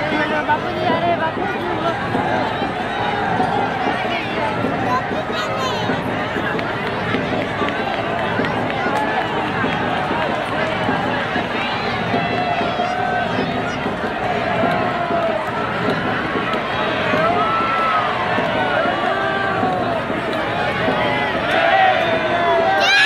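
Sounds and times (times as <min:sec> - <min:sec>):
crowd babble: 0:00.0 - 0:23.0.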